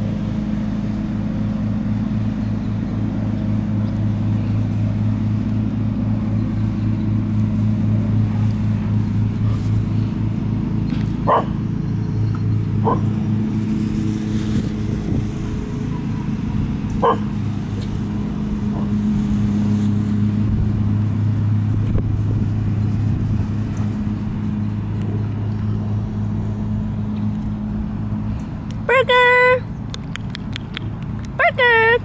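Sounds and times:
low machine hum: 0:00.0 - 0:32.0
dog barking: 0:11.3 - 0:11.6, 0:12.8 - 0:13.1, 0:17.0 - 0:17.3.

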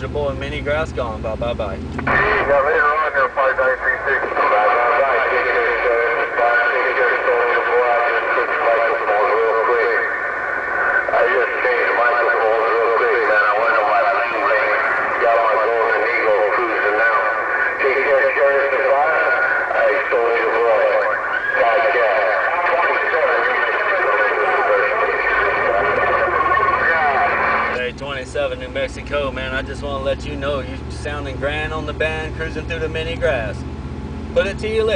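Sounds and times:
person talking over radio speaker: 0:00.0 - 0:33.6, 0:34.4 - 0:34.9
radio band noise: 0:00.0 - 0:33.6.

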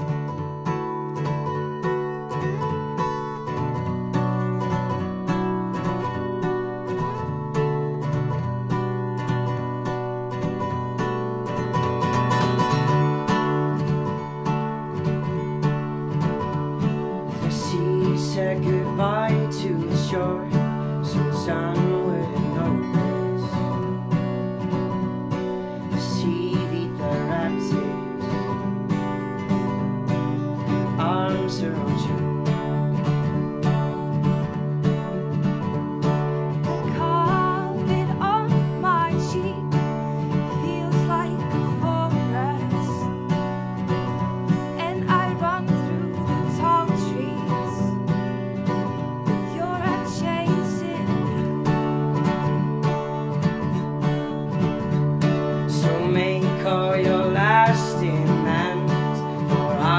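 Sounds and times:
acoustic guitars strumming: 0:00.0 - 0:59.9.

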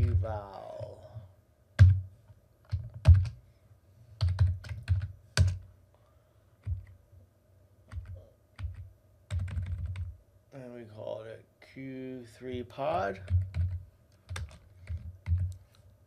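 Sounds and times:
faint steady hum: 0:00.0 - 0:16.0
computer keyboard typing: 0:02.7 - 0:03.4, 0:04.2 - 0:05.6, 0:07.9 - 0:10.1, 0:13.2 - 0:15.7.

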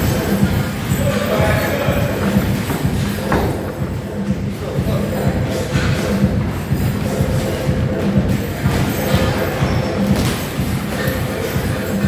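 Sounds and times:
background music with pulsing bass: 0:00.0 - 0:12.0.

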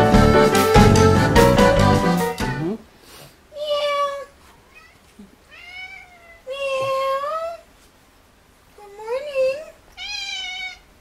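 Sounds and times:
cat meowing: 0:03.6 - 0:07.6, 0:09.4 - 0:11.0.

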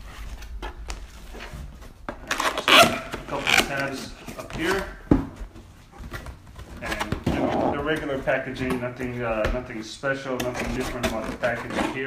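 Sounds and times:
cardboard box scraping on table: 0:06.9 - 0:08.1.

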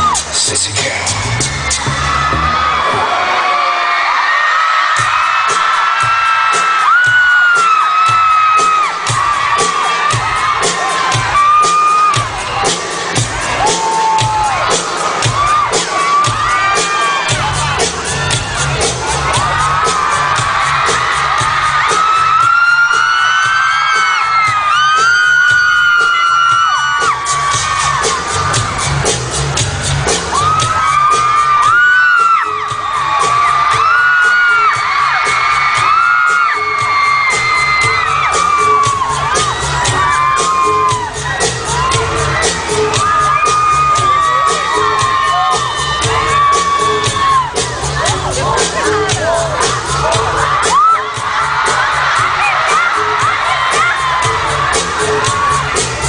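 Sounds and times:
audience screaming and cheering: 0:00.0 - 0:56.0
concert music with heavy bass beat: 0:00.0 - 0:56.0.

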